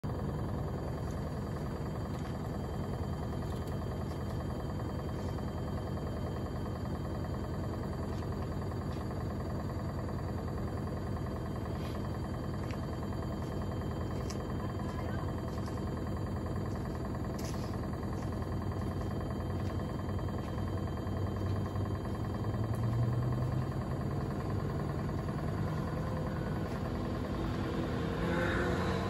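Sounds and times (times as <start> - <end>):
washing machine spinning: 0.0 - 28.7.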